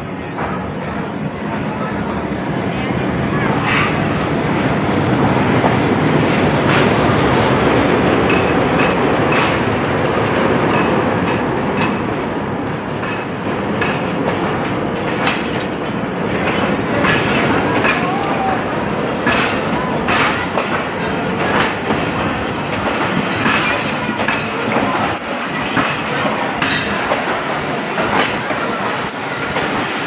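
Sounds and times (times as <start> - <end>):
diesel locomotive engine: 0.0 - 30.0
train wheels clacking on rail joints: 3.4 - 30.0.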